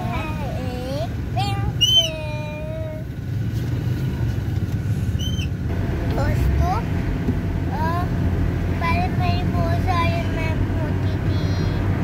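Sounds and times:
car rumble inside cabin: 0:00.0 - 0:12.0.

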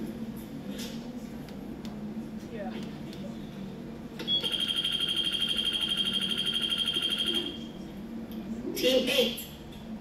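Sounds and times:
rapidly pulsing electronic alarm beep: 0:04.3 - 0:07.6.

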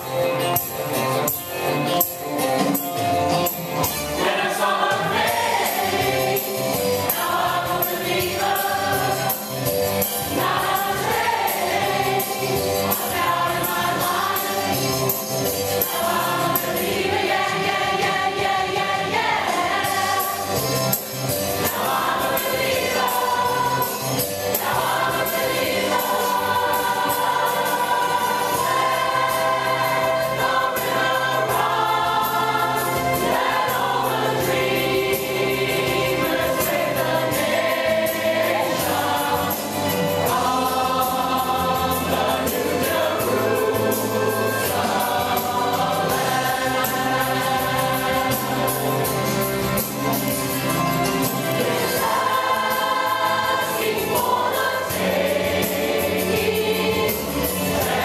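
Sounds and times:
mixed choir singing: 0:03.8 - 0:58.0.

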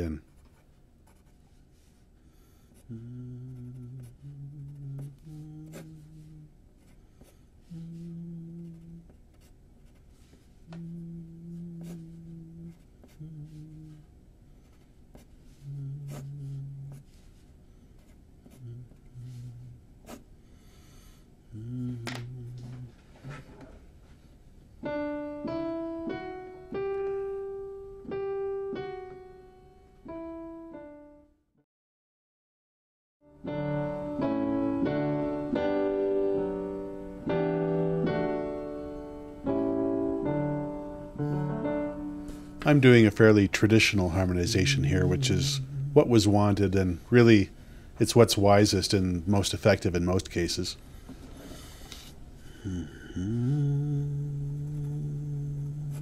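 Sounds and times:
man humming: 0:02.8 - 0:06.6, 0:07.6 - 0:09.2, 0:10.7 - 0:14.1, 0:15.6 - 0:17.1, 0:18.4 - 0:20.2, 0:21.5 - 0:23.5, 0:42.6 - 0:47.4, 0:52.5 - 0:56.0
slow piano hymn melody: 0:24.8 - 0:31.2, 0:33.3 - 0:43.0.

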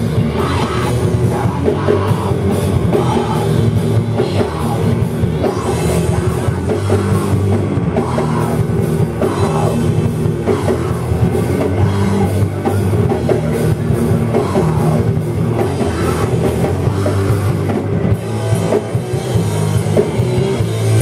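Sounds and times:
bass: 0:00.0 - 0:21.0
distorted guitar: 0:00.0 - 0:21.0
drum kit: 0:00.0 - 0:21.0.

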